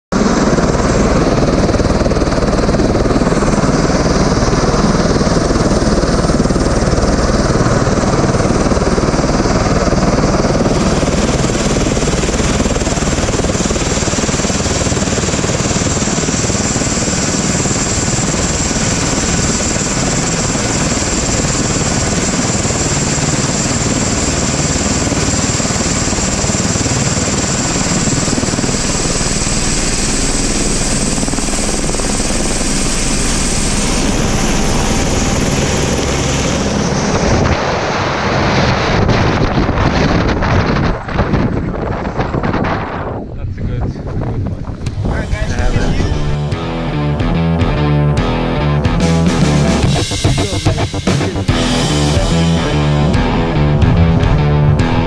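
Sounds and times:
helicopter rotor and engine: 0:00.1 - 0:55.0.

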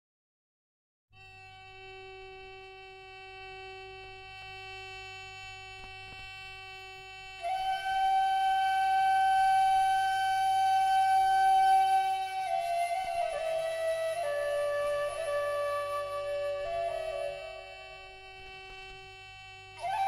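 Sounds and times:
breathy flute long note: 0:01.2 - 0:20.0
woodwind drone: 0:01.2 - 0:20.0.

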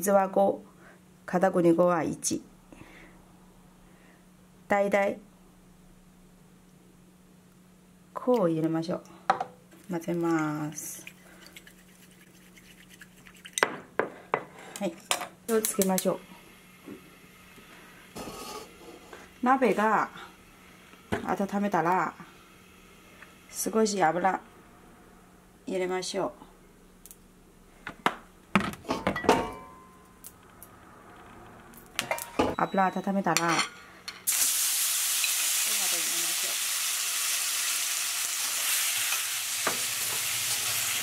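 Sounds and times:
gas burner hissing: 0:15.5 - 0:24.6, 0:34.2 - 0:41.0
kitchenware knocking and clinking: 0:28.6 - 0:29.9.

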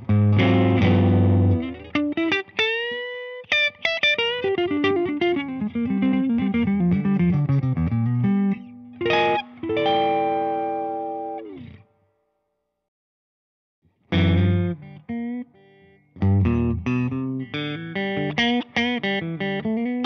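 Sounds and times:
electric guitar playing: 0:00.0 - 0:11.9, 0:14.1 - 0:20.0.

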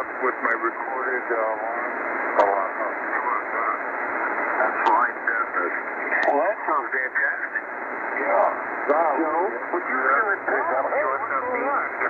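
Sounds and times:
muffled radio voices: 0:00.0 - 0:12.0
radio band noise hiss: 0:00.0 - 0:12.0.

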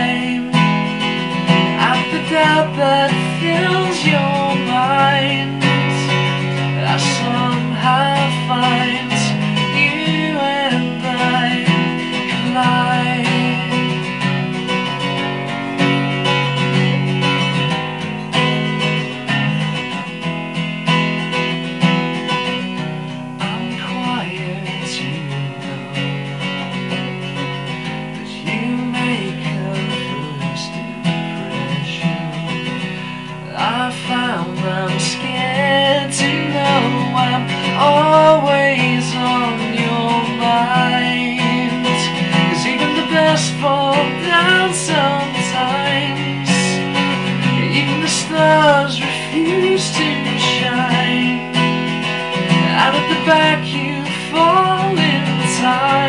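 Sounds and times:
man singing: 0:00.0 - 0:20.2, 0:22.3 - 0:56.0
acoustic guitar strumming: 0:00.0 - 0:56.0.

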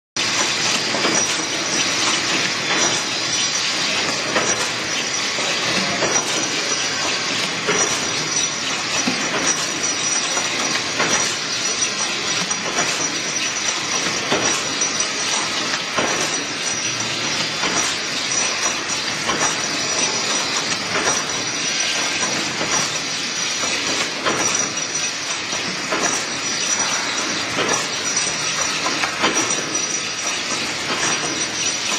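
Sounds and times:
wrapping machine hiss and whine: 0:00.2 - 0:31.9.

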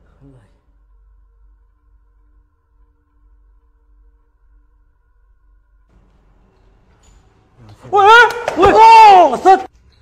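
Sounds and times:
low hum: 0:00.0 - 0:07.6.

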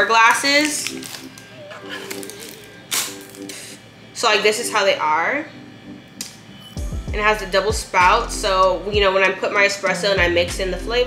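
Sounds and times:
soft background music: 0:00.0 - 0:11.0
plastic packaging tearing: 0:00.2 - 0:03.8.

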